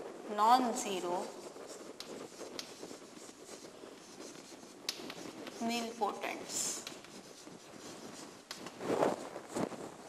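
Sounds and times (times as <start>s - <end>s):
chalk scratching on chalkboard: 0.7s - 9.8s
chalk clicking on board: 1.4s - 8.8s.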